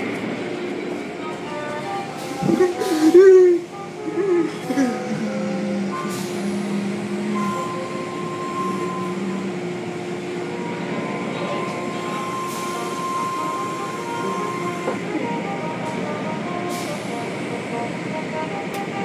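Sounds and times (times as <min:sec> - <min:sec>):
constant droning hum: 0:00.0 - 0:12.2.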